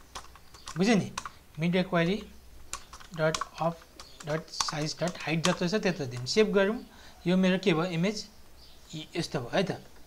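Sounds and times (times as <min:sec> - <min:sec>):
keyboard typing: 0:00.0 - 0:06.5.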